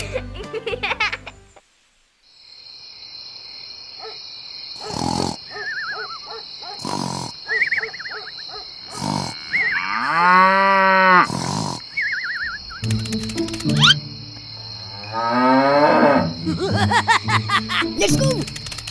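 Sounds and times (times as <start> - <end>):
cow mooing: 9.2 - 11.4, 14.8 - 16.4
warbling chirps: 11.9 - 14.8.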